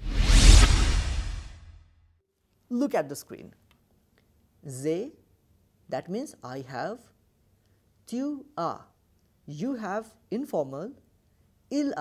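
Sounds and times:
deep low rumble: 0.0s - 1.8s
whoosh: 0.0s - 2.0s.

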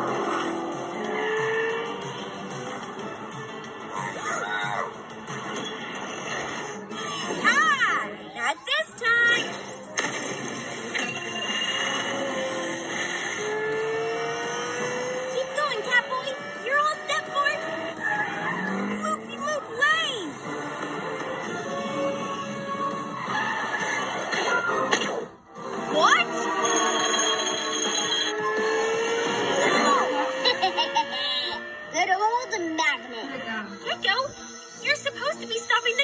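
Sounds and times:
cartoon background music: 0.0s - 36.0s
vehicle-like whine rising in pitch: 10.9s - 19.7s, 25.6s - 34.8s
cartoon sound effects: 29.4s - 32.1s.

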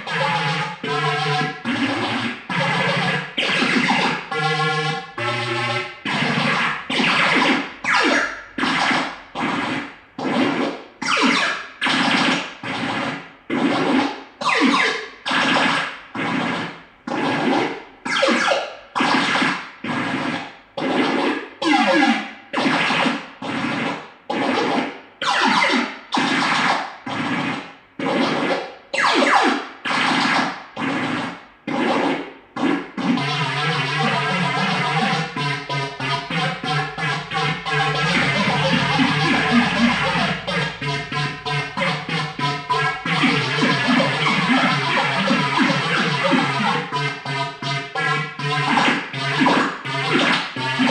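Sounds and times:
synth siren bursts: 0.0s - 50.9s.

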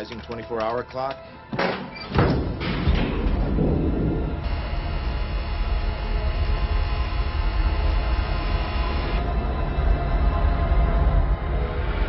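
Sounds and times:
machine-like drone: 2.6s - 12.0s.

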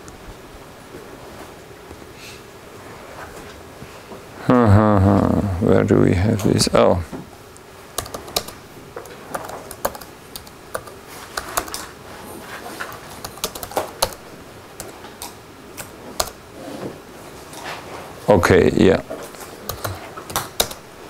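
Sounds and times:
computer keyboard typing: 7.9s - 11.9s, 12.8s - 16.4s, 19.6s - 20.8s.

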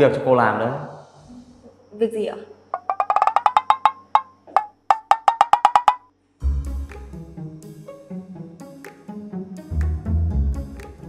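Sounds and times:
wood-block ticking taps: 2.8s - 6.1s
music cue with deep bass note: 6.4s - 8.5s, 9.2s - 11.0s.

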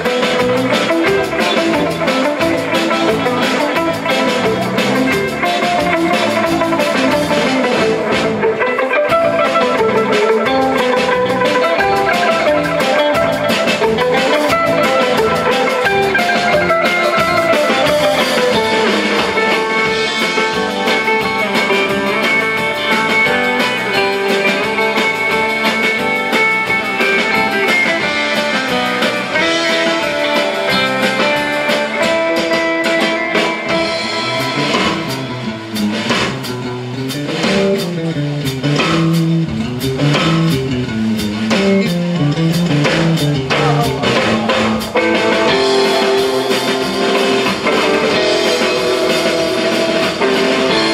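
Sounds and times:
drum kit: 0.0s - 50.9s
electric bass: 0.0s - 50.9s
twangy electric lead guitar: 0.0s - 50.9s.

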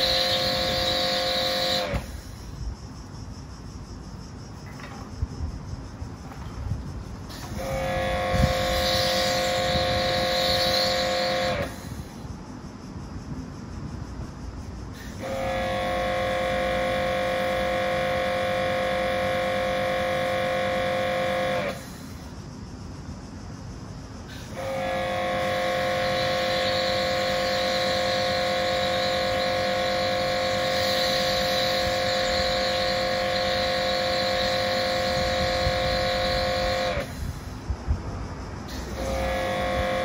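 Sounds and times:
pressure washer motor whining: 0.0s - 2.5s, 7.3s - 12.2s, 15.0s - 22.3s, 24.3s - 37.6s, 38.7s - 40.0s
spray hiss: 0.0s - 3.0s, 7.3s - 12.3s, 21.0s - 22.6s, 24.2s - 37.8s.

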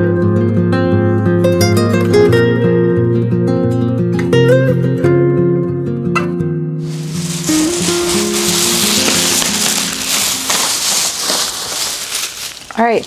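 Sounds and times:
plastic bag rustling and crinkling: 6.8s - 13.0s.

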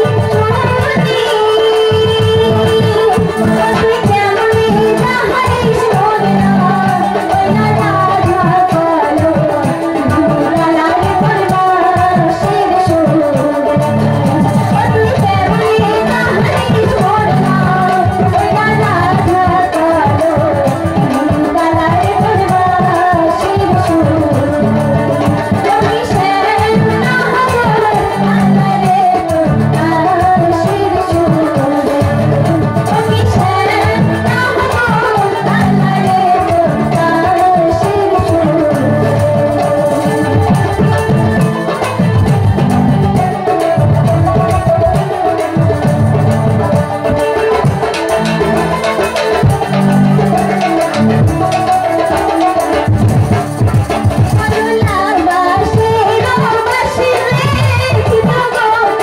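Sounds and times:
woman singing folk song: 0.0s - 41.4s, 54.3s - 59.0s
instrumental accompaniment: 0.0s - 59.0s.

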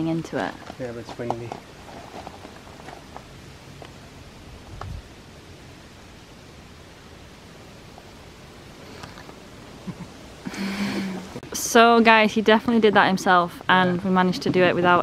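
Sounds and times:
faint rustling: 0.0s - 5.1s, 7.8s - 15.0s.

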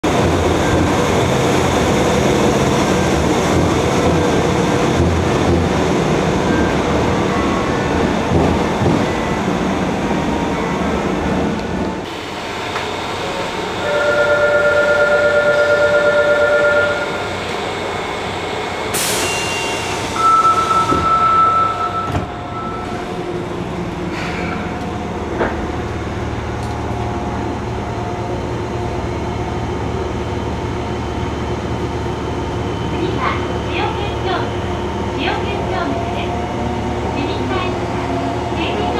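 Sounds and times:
train rumble: 0.0s - 38.9s.

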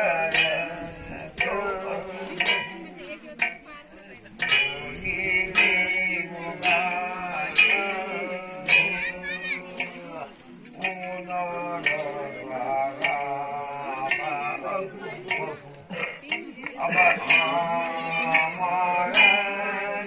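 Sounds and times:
man singing in chanting style: 0.0s - 3.6s, 4.4s - 20.0s
sharp percussion strikes: 0.0s - 20.0s.

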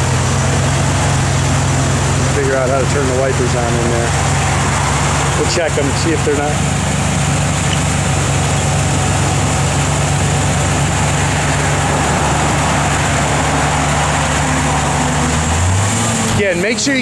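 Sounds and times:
pickup truck engine idling: 0.0s - 17.0s.

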